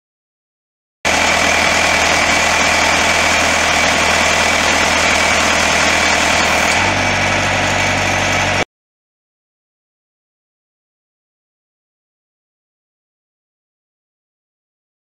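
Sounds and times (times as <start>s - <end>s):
diesel engine idling: 1.1s - 8.7s.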